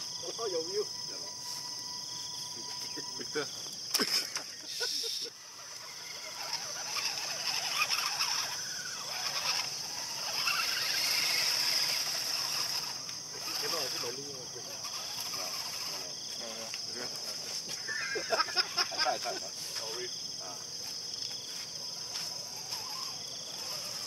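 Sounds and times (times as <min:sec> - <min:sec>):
insects droning: 0:00.0 - 0:24.0
small electric motor whine: 0:00.0 - 0:24.0.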